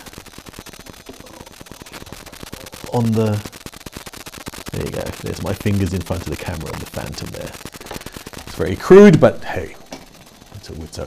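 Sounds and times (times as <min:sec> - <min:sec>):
rapid crackle of sharp clicks: 0:00.0 - 0:11.0
man's voice: 0:02.9 - 0:03.4, 0:04.8 - 0:07.5.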